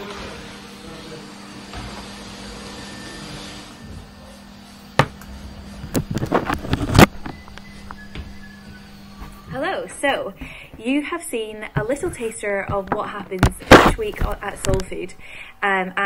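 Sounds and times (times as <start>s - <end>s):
vacuum cleaners running: 0.0s - 15.4s.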